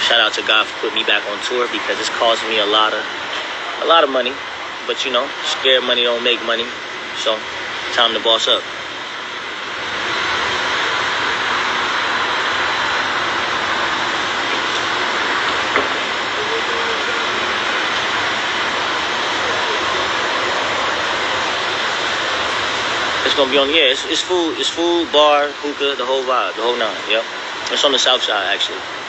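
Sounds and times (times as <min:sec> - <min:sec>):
engine-like rushing roar: 0:00.0 - 0:29.0.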